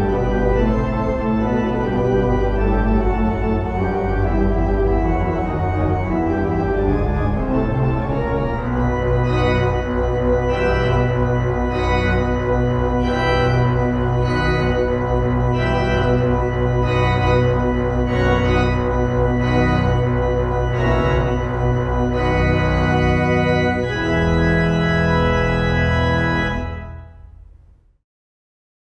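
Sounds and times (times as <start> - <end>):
organ chords over deep bass: 0.0 - 27.7.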